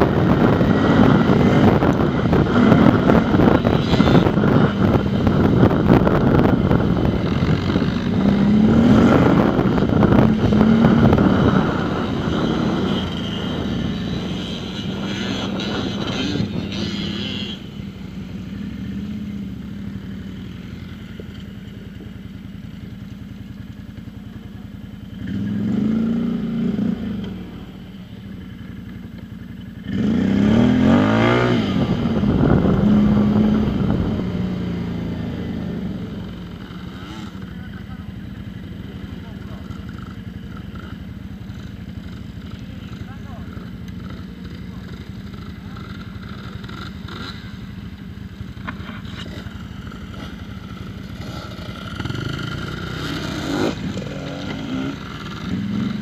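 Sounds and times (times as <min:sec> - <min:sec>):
quad bike engine revving: 0:00.0 - 0:19.4, 0:25.2 - 0:27.7, 0:29.8 - 0:56.0
dirt bike engine running: 0:00.0 - 0:56.0.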